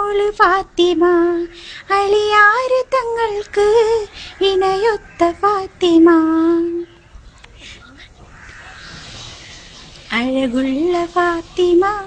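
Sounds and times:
faint bird calling: 3.1s - 12.0s.

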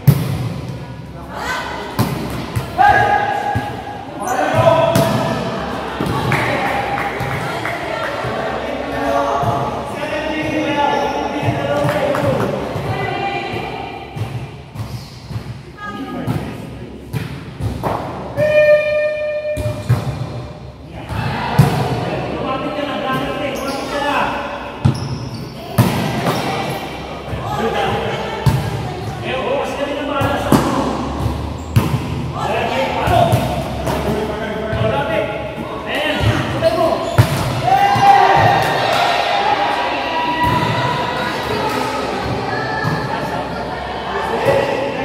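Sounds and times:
volleyballs thudding: 0.0s - 1.0s, 1.9s - 9.8s, 16.2s - 18.6s, 24.8s - 29.3s, 30.1s - 39.3s
players' voices: 0.0s - 45.0s.

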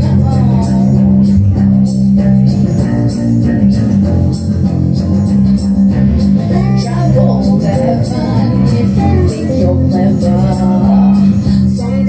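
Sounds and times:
woman singing into a microphone: 0.0s - 5.1s, 6.4s - 12.0s
bass line: 0.0s - 12.0s
guitar: 0.0s - 12.0s.

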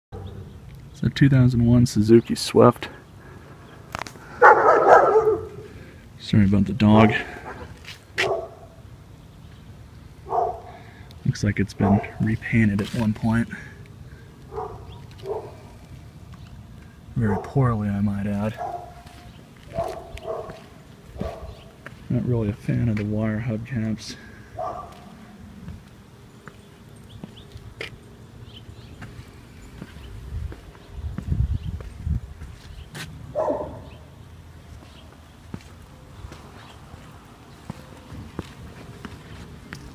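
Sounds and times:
footsteps on pavement: 3.5s - 5.7s, 6.4s - 8.8s, 11.8s - 39.9s
dog barking: 4.4s - 5.7s, 8.2s - 8.8s, 10.3s - 10.7s, 11.8s - 12.2s, 14.5s - 15.6s, 17.2s - 17.6s, 18.5s - 21.7s, 24.6s - 25.1s, 33.3s - 33.9s.

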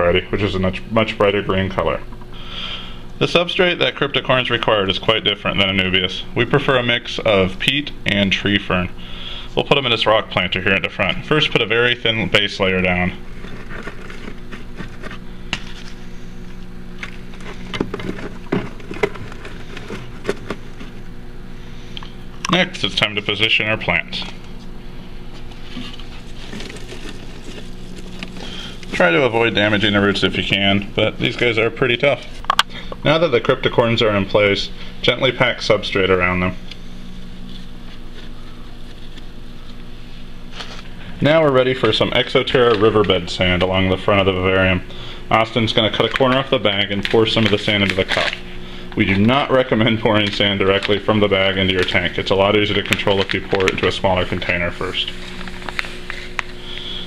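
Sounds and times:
low hum: 0.0s - 57.0s.

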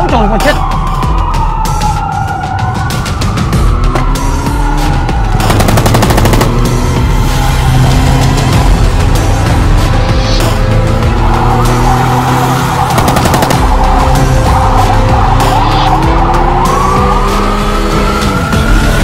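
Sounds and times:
dramatic background music: 0.0s - 19.0s
police siren wailing: 0.0s - 19.0s.

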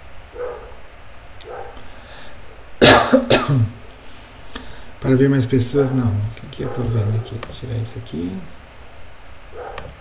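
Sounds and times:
person coughing: 2.8s - 3.8s.

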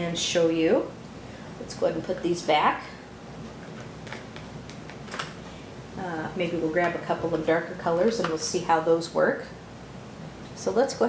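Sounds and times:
pencils clicking against case: 3.8s - 5.4s.

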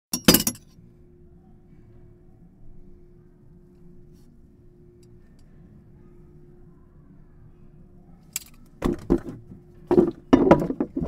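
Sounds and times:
faint steady hum: 0.1s - 11.0s.

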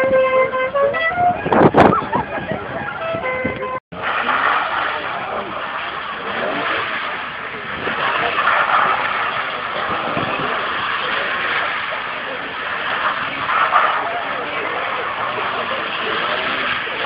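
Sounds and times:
dense rushing noise: 0.0s - 17.0s
tyres sliding on wet tarmac: 2.1s - 17.0s.

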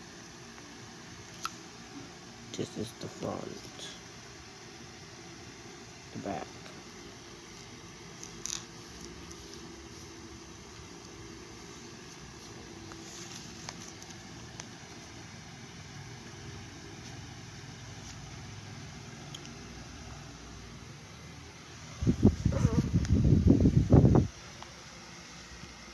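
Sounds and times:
faint handling clicks and rustles: 7.3s - 15.2s.

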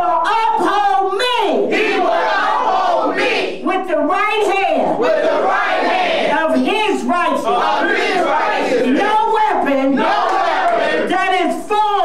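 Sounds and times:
congregation reciting in unison: 1.6s - 3.6s, 4.9s - 11.1s.

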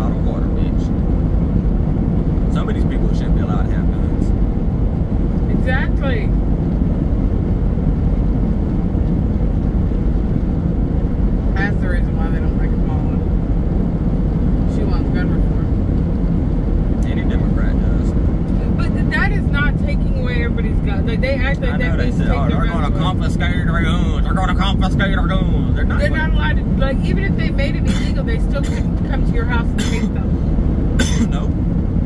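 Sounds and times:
car road and engine rumble: 0.0s - 32.0s.

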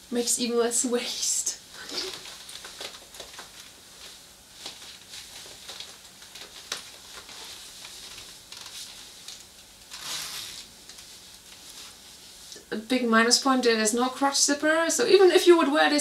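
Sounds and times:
faux leather clothing rustling: 1.8s - 12.6s.

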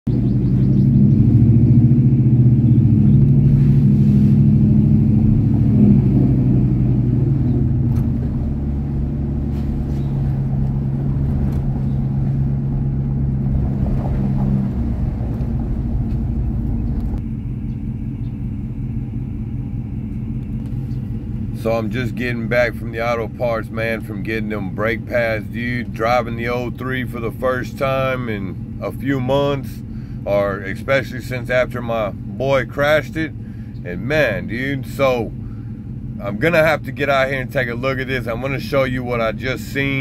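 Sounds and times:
pickup engine rumble: 0.1s - 40.0s.

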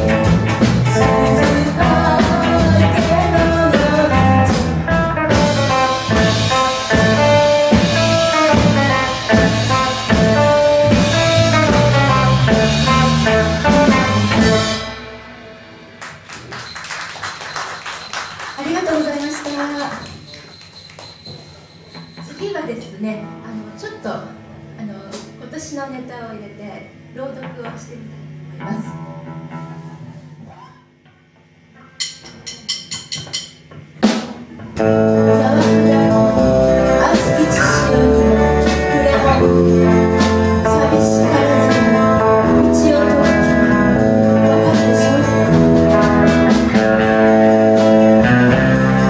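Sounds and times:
rock band playing: 0.0s - 22.6s, 34.0s - 49.0s
guitar amplifier hum: 0.0s - 32.1s, 33.7s - 49.0s.

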